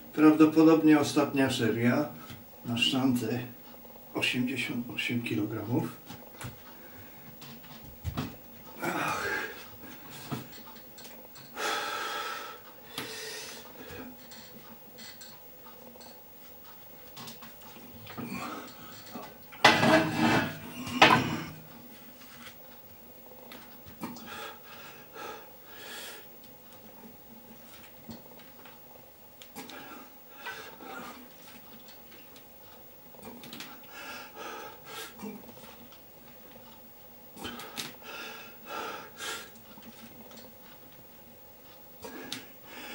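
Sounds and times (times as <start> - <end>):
heavy breathing: 8.8 - 10.4, 11.5 - 14.2, 37.4 - 39.6, 42.0 - 42.9.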